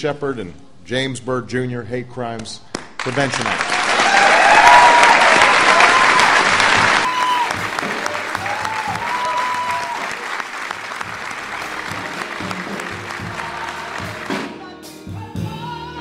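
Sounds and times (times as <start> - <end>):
large crowd applauding: 3.0 - 14.5.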